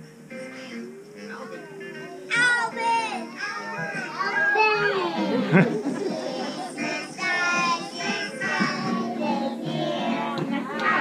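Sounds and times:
background music: 0:00.0 - 0:11.0
young children's voices: 0:02.2 - 0:09.5.

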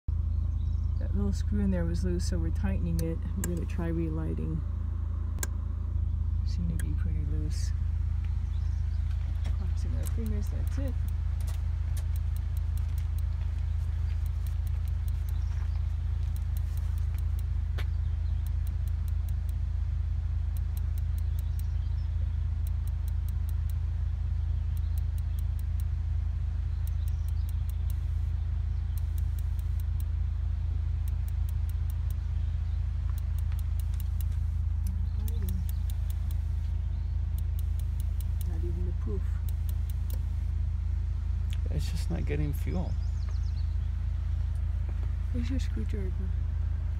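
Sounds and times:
steady low rumble: 0:00.0 - 0:46.9
igniter clicking: 0:02.8 - 0:03.8, 0:05.4 - 0:05.6, 0:06.6 - 0:07.0, 0:10.0 - 0:13.4, 0:14.2 - 0:17.5, 0:18.2 - 0:19.6, 0:20.5 - 0:23.8, 0:24.6 - 0:25.9, 0:26.7 - 0:30.2, 0:31.0 - 0:32.3, 0:33.0 - 0:40.5.

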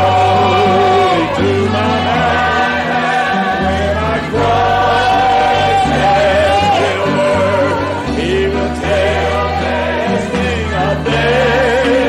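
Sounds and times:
gospel singing with accompaniment: 0:00.0 - 0:12.0.

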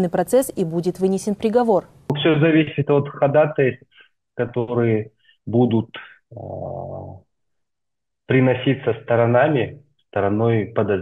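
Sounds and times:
man saying uhh: 0:05.8 - 0:07.2.

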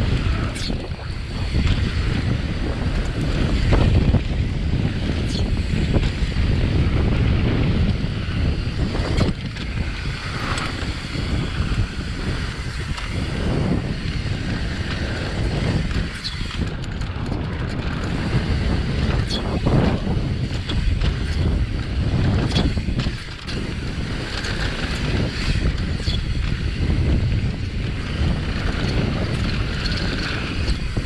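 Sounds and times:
bike knocks and rattles: 0:00.0 - 0:31.0
bike tyre rumble: 0:00.0 - 0:31.0
wind buffeting microphone: 0:00.0 - 0:31.0.

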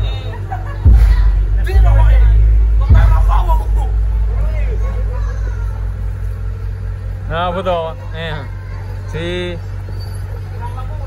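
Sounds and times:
low engine rumble: 0:00.0 - 0:11.0
men talking: 0:00.0 - 0:11.0.

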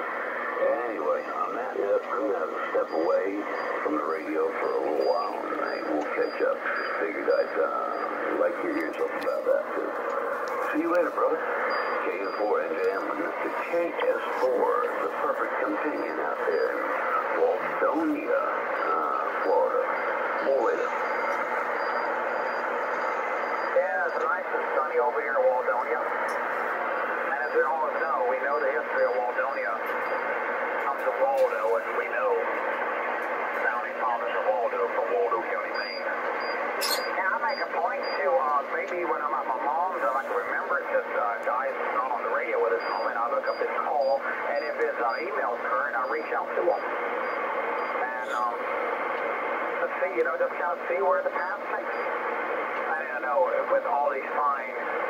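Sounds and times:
radio voice through speaker: 0:00.0 - 0:55.0
steady low hum: 0:00.0 - 0:55.0.

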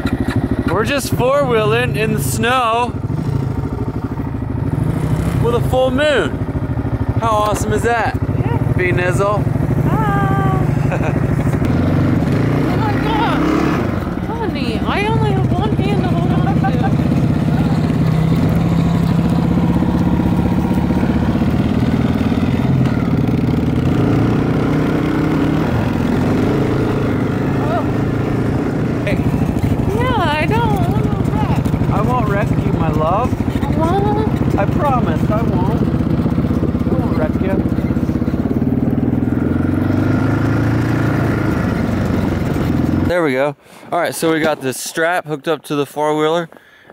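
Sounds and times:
atv engine running: 0:00.0 - 0:43.4
voices: 0:00.6 - 0:03.0, 0:05.3 - 0:06.4, 0:07.1 - 0:11.6, 0:12.3 - 0:20.8, 0:27.2 - 0:28.4, 0:29.0 - 0:38.6.

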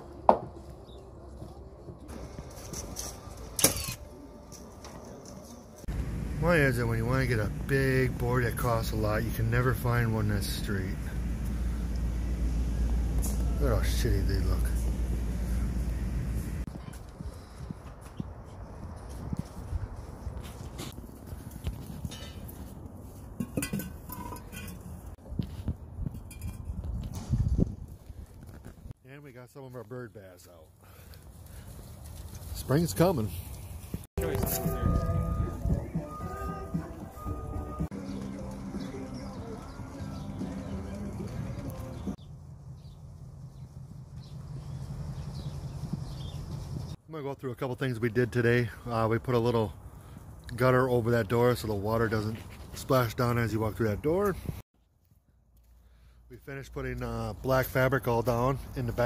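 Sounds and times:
background work sounds: 0:00.0 - 0:29.0
steady low rumble: 0:05.9 - 0:16.7, 0:34.0 - 0:37.7, 0:40.4 - 0:47.0.

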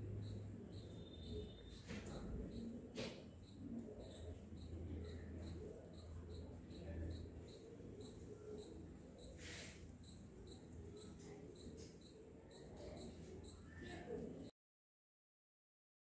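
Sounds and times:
cricket chirping: 0:00.0 - 0:02.8, 0:03.4 - 0:14.2
faint low hum: 0:00.0 - 0:14.5.

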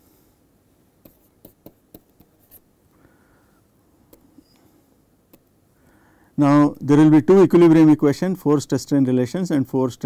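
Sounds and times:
low room hiss: 0:00.0 - 0:10.0
stylus tapping on tablet: 0:01.0 - 0:02.6
stylus scratching on tablet: 0:01.0 - 0:02.7.

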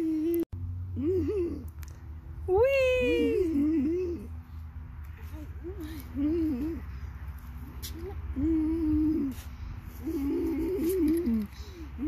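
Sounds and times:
low wavering voice: 0:00.0 - 0:01.7, 0:02.4 - 0:04.4, 0:05.2 - 0:07.0, 0:07.9 - 0:12.0.

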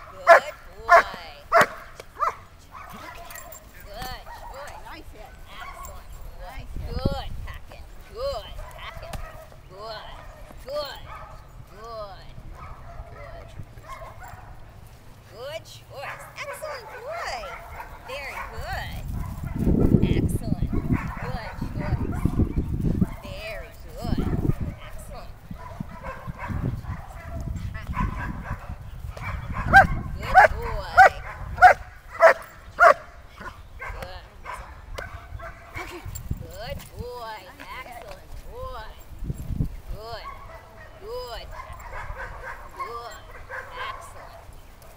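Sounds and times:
dog barking: 0:00.3 - 0:03.6, 0:08.6 - 0:09.5, 0:10.2 - 0:11.4, 0:12.6 - 0:14.6, 0:16.1 - 0:20.0, 0:20.7 - 0:23.3, 0:25.6 - 0:35.8, 0:40.2 - 0:44.9.

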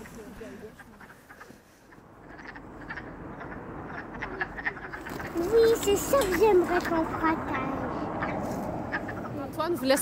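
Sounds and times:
frogs calling: 0:00.0 - 0:10.0.

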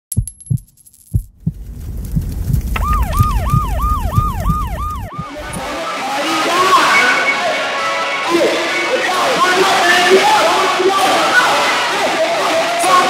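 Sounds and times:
deep thumps: 0:00.1 - 0:05.6
low bass rumble: 0:01.2 - 0:05.7
siren-like wailing tone: 0:02.8 - 0:07.5.

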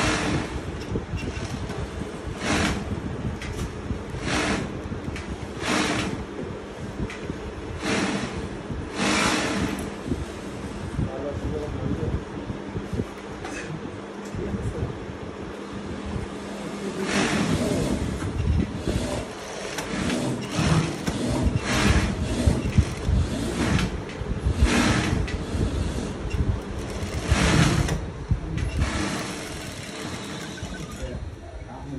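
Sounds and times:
sewing machine stitching: 0:00.0 - 0:00.6, 0:02.3 - 0:02.9, 0:03.5 - 0:06.3, 0:07.8 - 0:09.9, 0:17.0 - 0:28.0, 0:28.6 - 0:31.2.

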